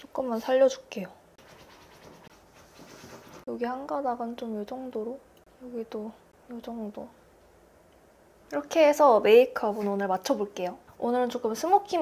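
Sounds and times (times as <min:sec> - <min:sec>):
fingers rustling hair: 0:01.4 - 0:03.5.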